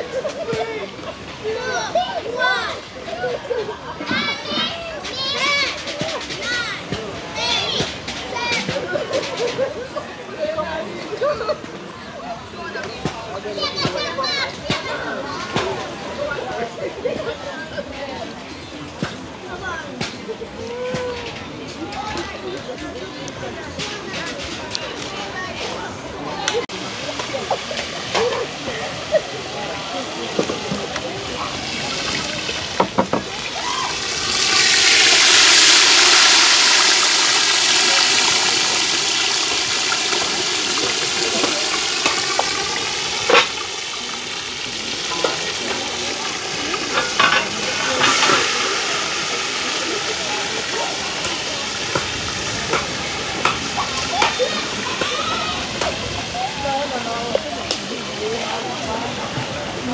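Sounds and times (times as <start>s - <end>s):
fish frying in hot oil: 26.9s - 57.2s
pot and utensils clinking: 34.3s - 49.0s.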